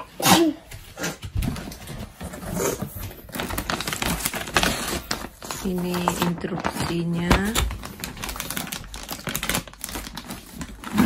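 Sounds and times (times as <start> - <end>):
cardboard and paper rustling: 0.7 - 11.0.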